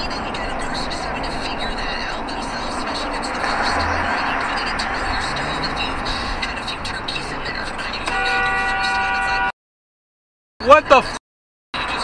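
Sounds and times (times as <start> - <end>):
road and tyre noise in car: 0.0 - 9.5, 10.6 - 11.2, 11.8 - 12.0
car horn: 8.0 - 9.6.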